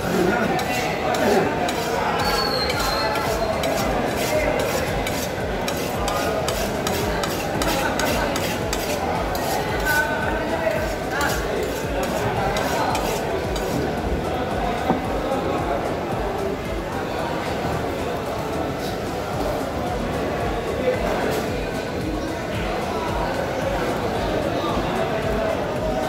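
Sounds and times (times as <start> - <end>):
murmur of voices: 0.0 - 26.0
knife scraping on sharpening steel: 0.5 - 9.8, 10.9 - 13.8.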